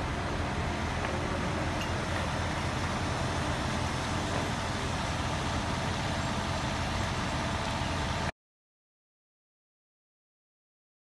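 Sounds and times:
heavy diesel engines droning: 0:00.0 - 0:08.3.

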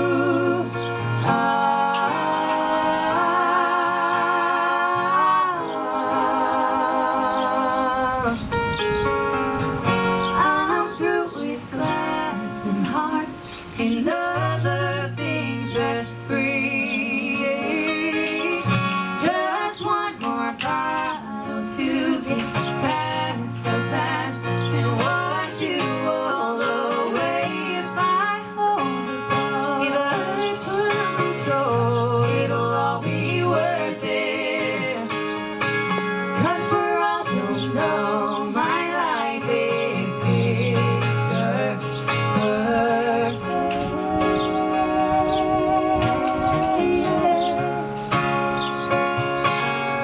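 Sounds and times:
man and woman singing: 0:00.0 - 0:09.0, 0:10.1 - 0:48.7
acoustic guitar: 0:00.0 - 0:50.0.

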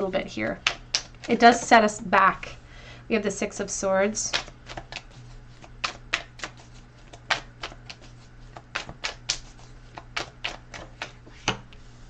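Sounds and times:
cards clicking and snapping: 0:00.6 - 0:01.4, 0:04.3 - 0:11.6.

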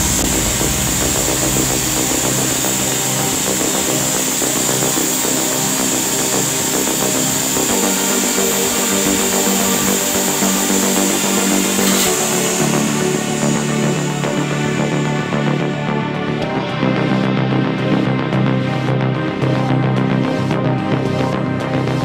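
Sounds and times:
electronic music: 0:00.0 - 0:22.0
electric impact drill running: 0:00.5 - 0:15.9.

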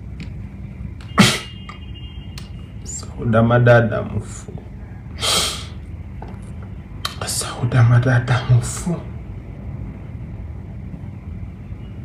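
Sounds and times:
man's sharp intake of breath: 0:01.2 - 0:01.6, 0:05.2 - 0:05.8.

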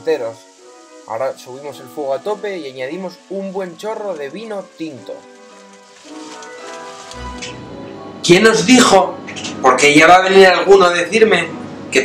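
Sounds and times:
wine sizzling in a hot pot: 0:00.0 - 0:07.6
background music: 0:00.0 - 0:12.0.

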